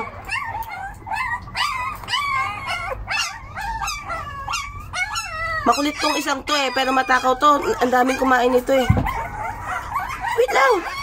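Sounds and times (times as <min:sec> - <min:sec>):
puppies whining and yelping: 0:00.0 - 0:11.0.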